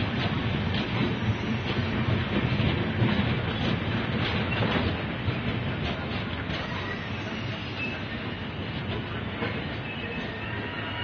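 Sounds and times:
train rumbling past: 0.0 - 11.0
faint wheel squeal: 6.6 - 8.5, 9.8 - 11.0.

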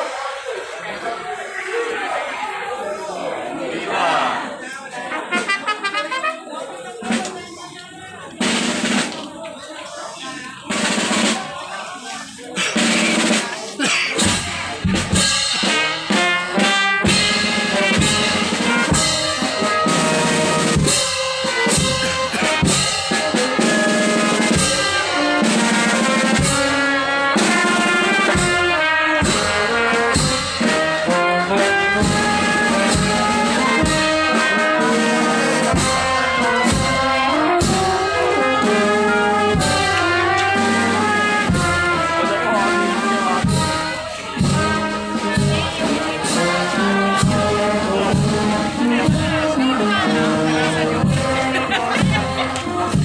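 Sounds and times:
brass band with drums: 0.0 - 53.0.

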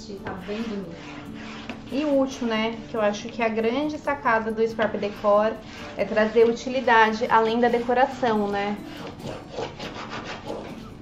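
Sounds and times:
tool rubbing over paper: 0.2 - 3.5, 4.3 - 11.0.

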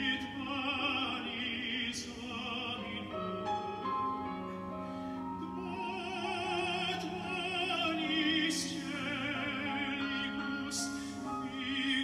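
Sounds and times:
operatic tenor singing: 0.0 - 4.5, 5.2 - 12.0
grand piano: 0.0 - 12.0.

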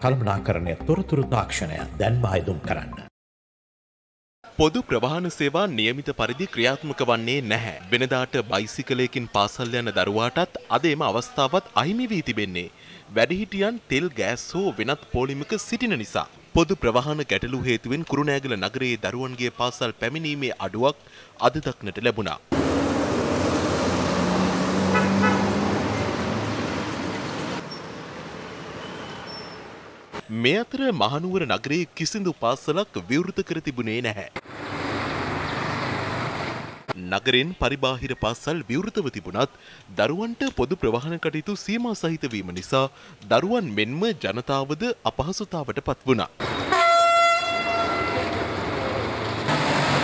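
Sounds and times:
street traffic engine drone: 22.5 - 30.2, 34.4 - 37.0, 46.4 - 50.0
vehicle horn toots: 24.8 - 25.7, 46.5 - 48.4.

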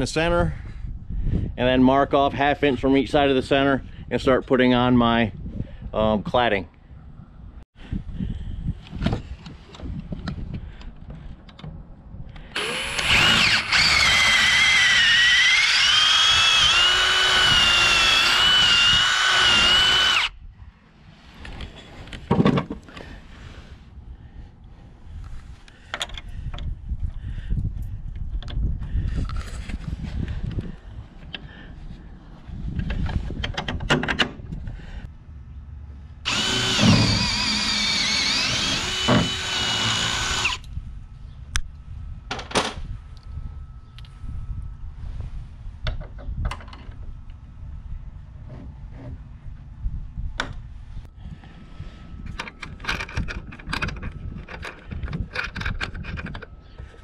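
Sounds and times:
cordless drill whining: 12.6 - 20.3, 36.3 - 40.6.

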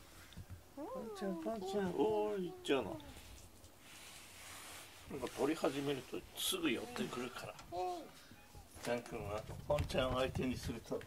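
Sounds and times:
woman's voice: 0.8 - 3.2
cat meowing: 0.8 - 3.3.

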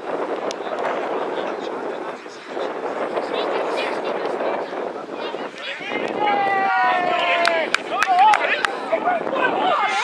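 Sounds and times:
players and spectators shouting: 5.2 - 10.0.

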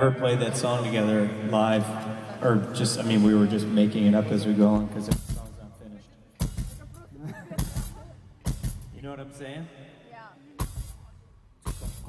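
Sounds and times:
person's voice: 0.0 - 5.2
heavy drum hits: 4.8 - 5.6, 6.4 - 9.1.

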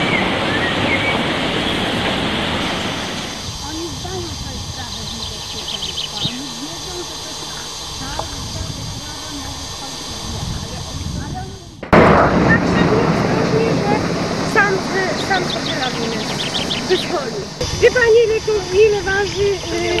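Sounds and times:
birds chirping: 0.0 - 20.0
indistinct chatter of people: 3.4 - 20.0.

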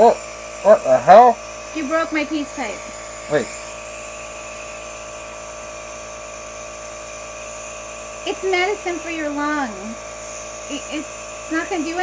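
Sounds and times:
air compressor humming: 0.0 - 12.0.

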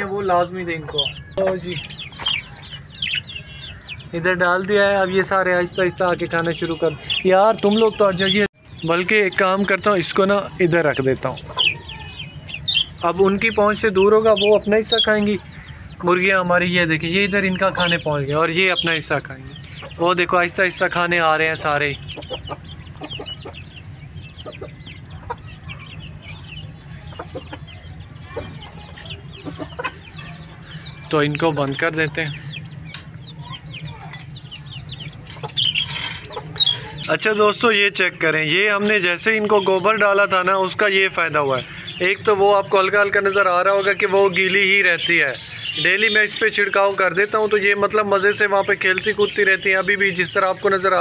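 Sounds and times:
budgerigars chattering: 0.0 - 51.0
hens clucking: 0.0 - 51.0
steady low hum: 10.4 - 37.3.

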